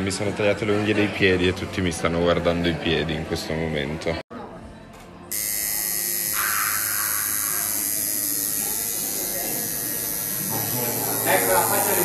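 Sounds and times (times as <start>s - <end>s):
tattoo machine buzzing: 5.3s - 12.0s.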